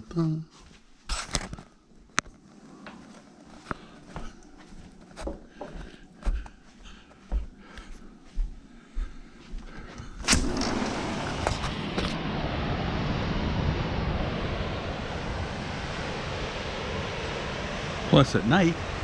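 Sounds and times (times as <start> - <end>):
soft footsteps: 0.5 - 10.2
sliding glass door clack: 10.3 - 12.2
ocean surf: 10.4 - 19.0.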